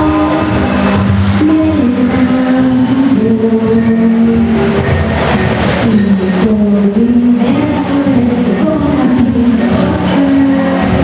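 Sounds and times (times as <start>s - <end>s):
girl singing into microphone: 0.0s - 5.1s, 5.8s - 11.0s
musical backing track: 0.0s - 11.0s.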